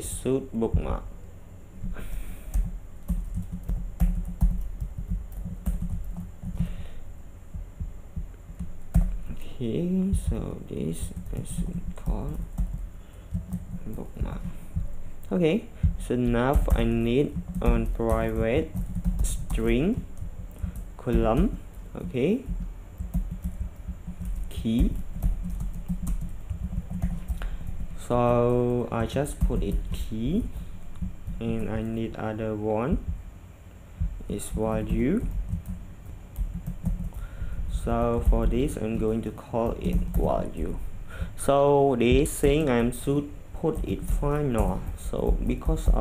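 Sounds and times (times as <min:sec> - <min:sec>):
computer keyboard typing: 0:01.8 - 0:33.2, 0:34.0 - 0:46.0.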